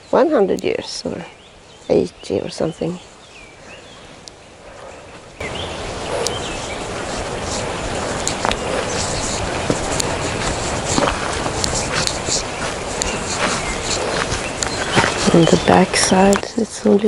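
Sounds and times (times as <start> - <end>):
small birds chirping: 0.0 - 17.0
steady rushing noise with rumble: 4.8 - 16.4.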